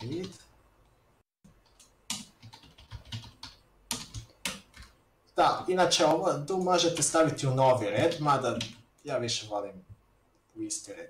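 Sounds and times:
computer keyboard typing: 0:00.0 - 0:00.4, 0:01.6 - 0:05.0.

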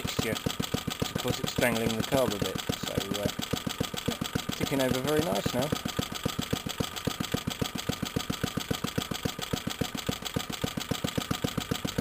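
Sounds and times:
small petrol engine idling: 0:00.0 - 0:12.0.

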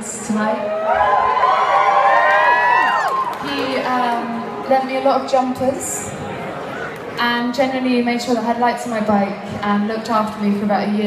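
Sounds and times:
audience cheering and whooping: 0:00.6 - 0:04.6.

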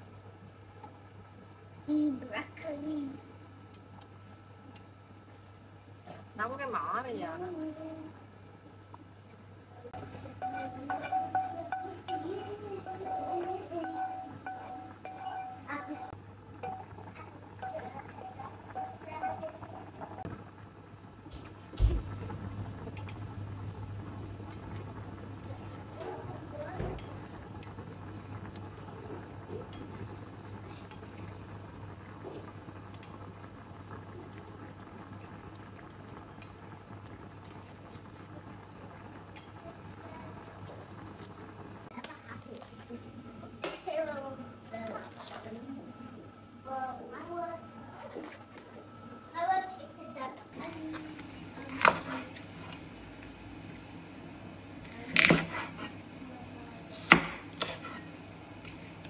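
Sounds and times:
low steady hum: 0:00.0 - 0:56.6
water boiling hard in a pot: 0:00.0 - 0:59.0.

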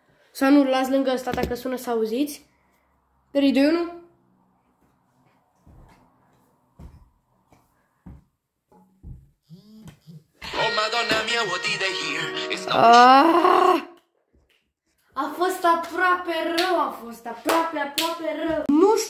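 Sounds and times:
person crying out: 0:12.7 - 0:14.0.

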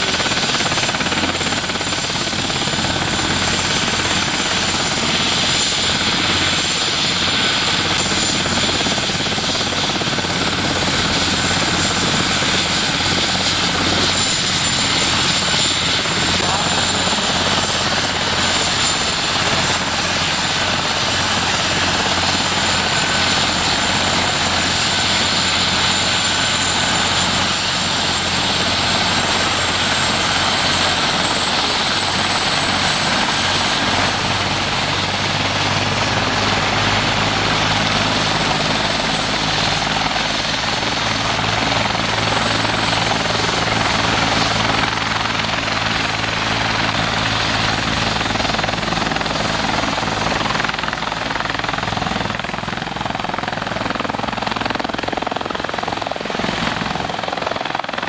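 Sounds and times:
helicopter rotor beat: 0:00.0 - 0:58.0
helicopter turbine whine: 0:00.0 - 0:58.0.

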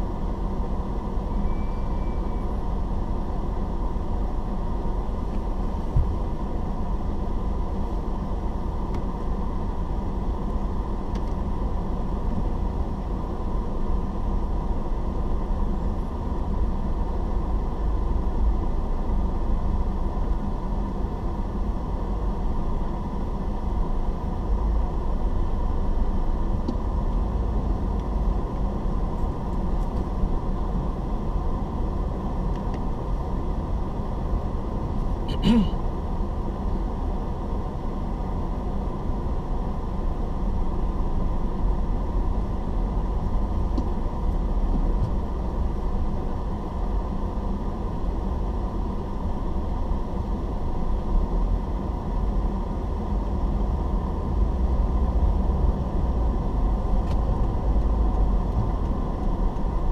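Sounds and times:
car engine and tyres rumbling: 0:00.0 - 0:59.9.

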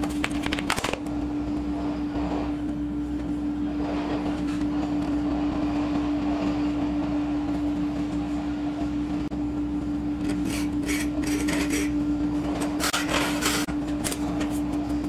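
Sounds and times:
steady machine hum: 0:00.0 - 0:15.0.

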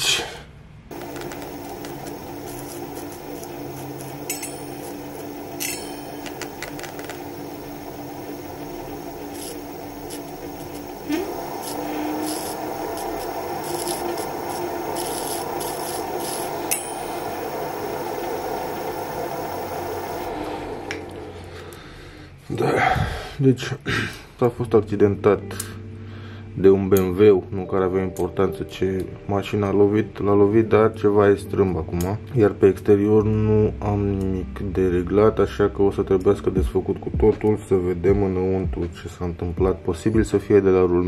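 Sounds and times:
electric motor whine: 0:00.9 - 0:22.2.

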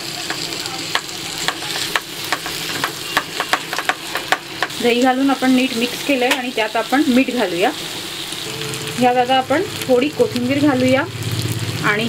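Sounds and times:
chicken sizzling in frying pan: 0:00.0 - 0:12.0.

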